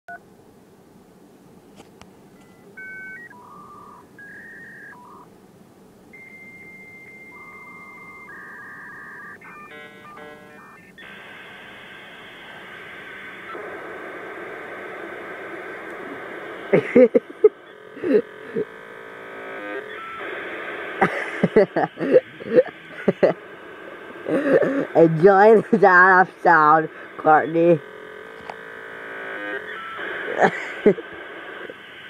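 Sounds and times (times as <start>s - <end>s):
dial-up modem connecting: 2.4s - 5.3s, 6.1s - 32.0s.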